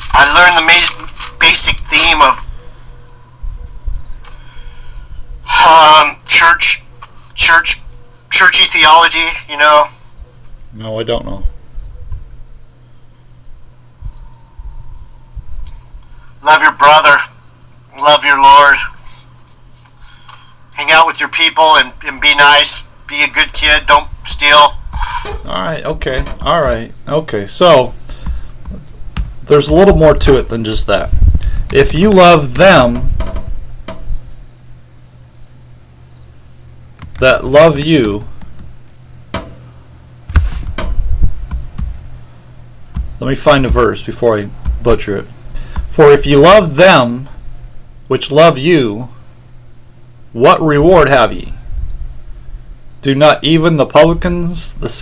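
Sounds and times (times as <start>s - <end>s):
low hum and rumble: 11.4s - 16.4s, 23.8s - 48.2s
high-pitched insect chirping: 11.6s - 20.8s, 27.8s - 48.1s, 48.7s - 50.4s, 51.6s - 53.1s
soft low thumps: 28.1s - 30.5s, 38.4s - 46.0s
keyboard and mouse clicks: 37.0s - 39.0s
low thud: 40.3s - 42.2s, 42.9s - 44.0s, 44.6s - 45.0s.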